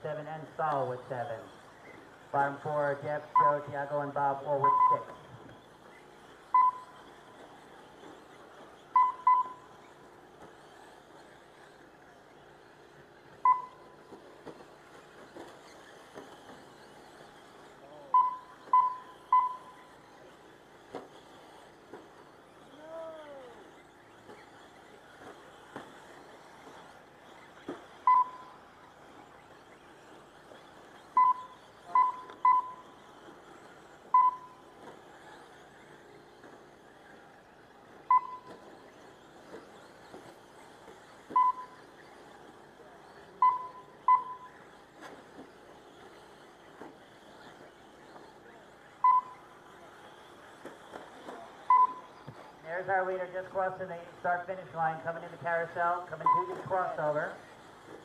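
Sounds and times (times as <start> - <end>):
rc trucks running on dirt: 0.0 - 58.0
short electronic beeps: 3.2 - 5.3, 6.5 - 7.1, 8.9 - 9.8, 13.4 - 14.0, 18.0 - 20.2, 28.0 - 28.6, 31.1 - 33.0, 34.1 - 34.7, 38.0 - 38.6, 41.3 - 41.9, 43.4 - 44.6, 49.0 - 49.4, 51.7 - 52.2, 56.1 - 56.9.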